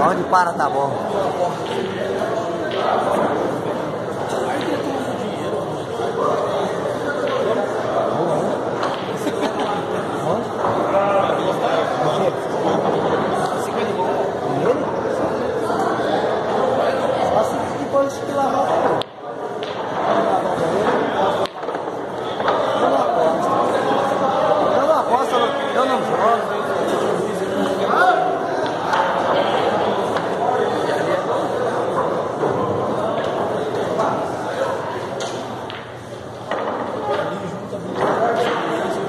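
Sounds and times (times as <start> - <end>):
murmur of voices: 0.0 - 39.0
people chatting in a hall: 0.0 - 39.0.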